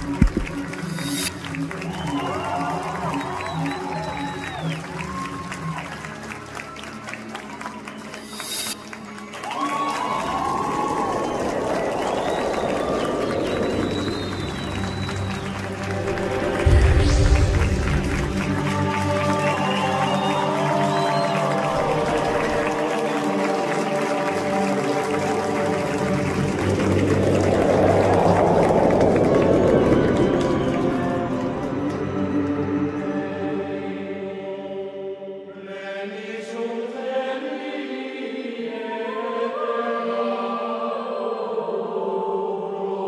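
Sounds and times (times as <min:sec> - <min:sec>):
audience applauding: 0:00.0 - 0:33.0
curtain call music: 0:00.0 - 0:34.2.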